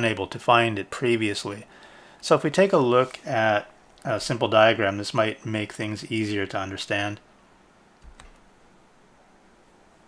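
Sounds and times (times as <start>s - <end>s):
faint room noise: 0.0s - 10.0s
computer mouse click: 8.0s - 8.4s.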